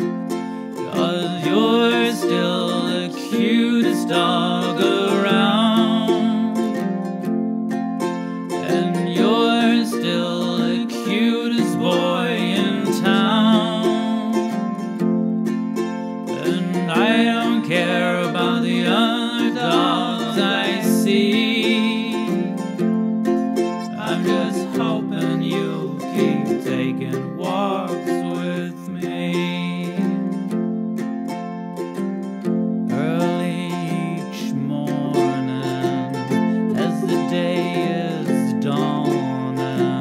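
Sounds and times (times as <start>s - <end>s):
plucked cittern melody: 0.0s - 40.0s.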